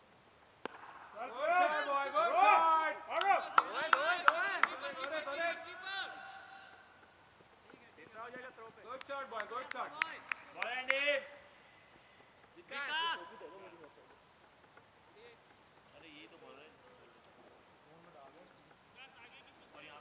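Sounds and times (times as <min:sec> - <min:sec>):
cricket bat hitting ball: 0:00.6 - 0:01.1
players shouting: 0:01.2 - 0:07.1.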